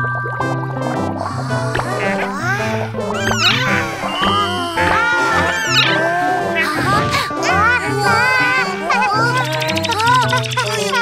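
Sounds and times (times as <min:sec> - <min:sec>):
bouncy children's music: 0:01.1 - 0:11.0
squeaky cartoon dinosaur cries: 0:02.0 - 0:11.0.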